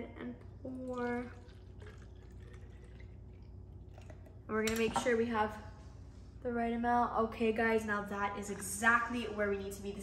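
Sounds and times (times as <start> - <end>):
low steady hum: 0.0 - 10.0
milk pouring into plastic bottle: 0.9 - 4.3.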